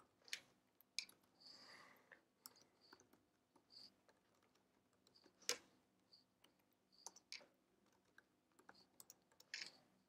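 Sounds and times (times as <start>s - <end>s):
keyboard typing: 6.4s - 9.8s.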